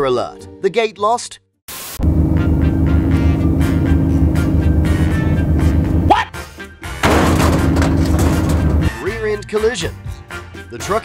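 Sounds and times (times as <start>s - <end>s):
low drone: 2.0s - 6.1s
truck crashing: 2.1s - 6.2s, 6.9s - 9.0s
background music: 2.3s - 11.0s.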